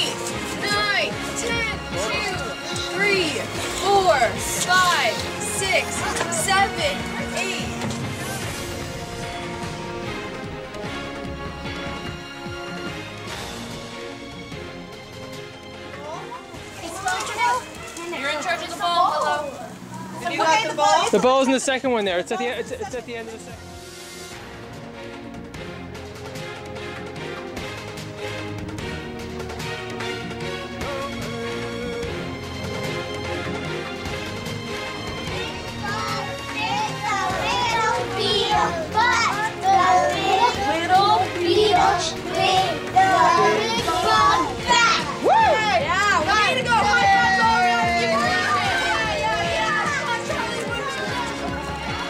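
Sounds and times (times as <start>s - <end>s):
children calling and chattering: 0.0s - 24.3s, 30.2s - 52.0s
background music: 0.0s - 52.0s
children talking and calling out: 15.8s - 21.2s, 35.0s - 52.0s.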